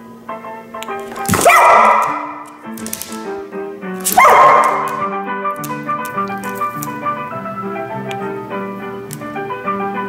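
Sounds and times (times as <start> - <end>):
dog barking: 1.4 - 2.4, 4.1 - 5.1.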